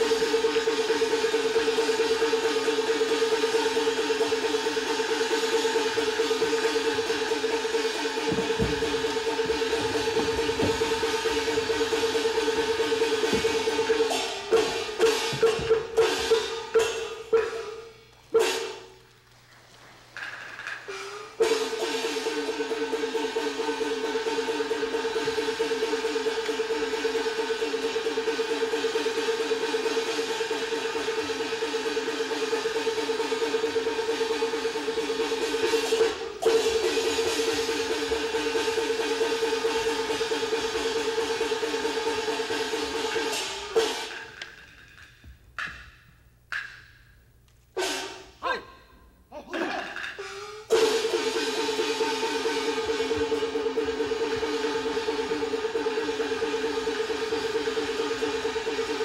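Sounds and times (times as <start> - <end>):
sharp percussion strokes: 0.0 - 19.0, 20.5 - 48.6, 49.3 - 59.0.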